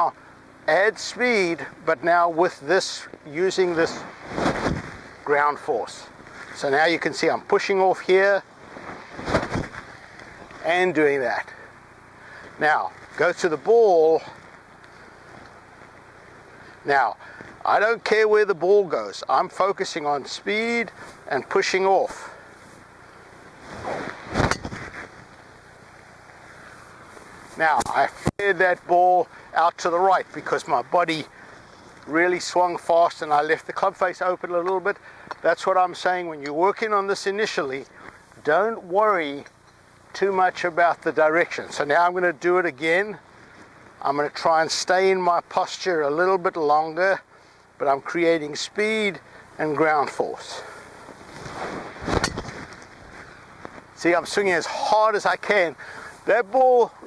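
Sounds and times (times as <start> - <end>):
golf club swishing: 23.6 - 25.1.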